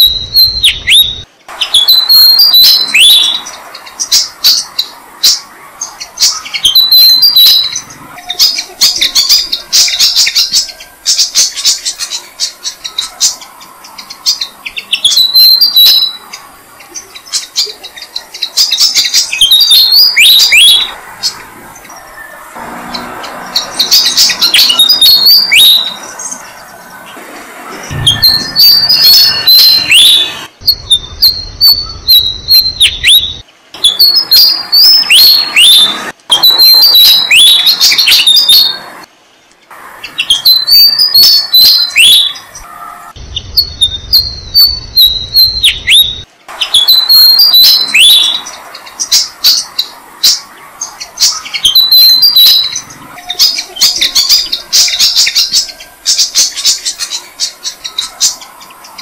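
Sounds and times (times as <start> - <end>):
high-pitched bird chirps: 0.0 - 27.1, 27.7 - 39.1, 40.0 - 59.0.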